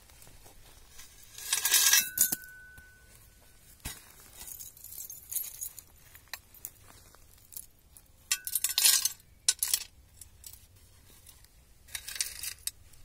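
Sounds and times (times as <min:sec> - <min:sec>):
chains clinking onto ground: 0:01.3 - 0:03.1, 0:04.3 - 0:06.8, 0:08.3 - 0:10.6
metal piece ringing: 0:01.6 - 0:03.1.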